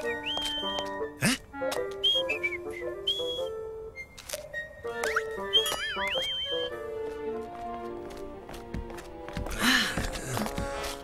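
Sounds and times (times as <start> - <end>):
man whistling high notes: 0.0 - 1.0, 1.9 - 4.1, 5.0 - 6.8
light cartoon background music: 0.0 - 11.0.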